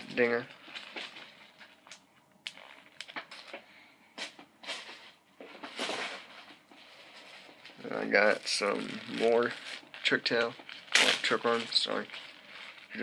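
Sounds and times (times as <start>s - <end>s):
plastic packaging rustling: 0.0s - 13.0s.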